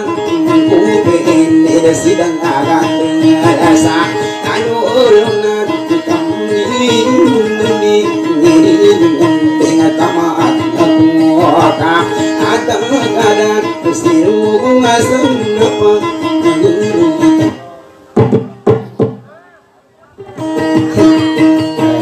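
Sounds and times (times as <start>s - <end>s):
person singing ornamented melody: 0.0s - 18.1s
plucked guitar drone: 0.0s - 19.3s, 20.2s - 22.0s.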